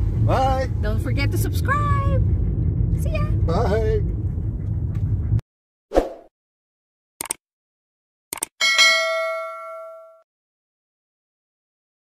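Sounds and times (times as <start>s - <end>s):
bell-like notification ding: 8.6s - 10.2s.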